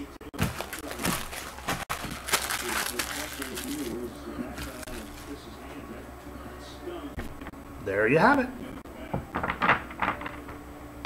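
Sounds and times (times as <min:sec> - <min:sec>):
trading cards handled: 0:00.4 - 0:05.3.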